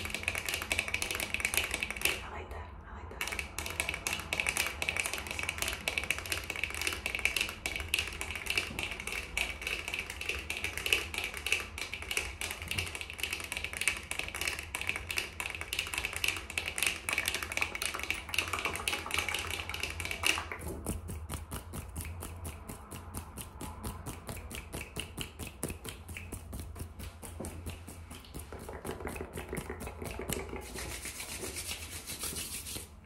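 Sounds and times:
fingernails tapping on microphone: 20.5 - 30.9.

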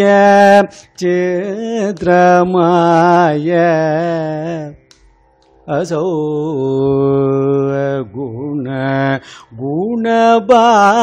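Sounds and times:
man singing verse: 0.0 - 4.8, 5.7 - 11.0.

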